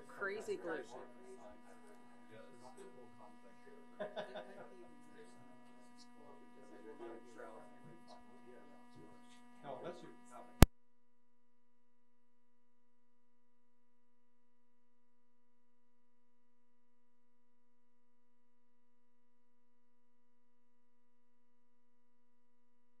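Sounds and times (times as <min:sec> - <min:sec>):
faint steady electronic tone: 0:00.0 - 0:10.7.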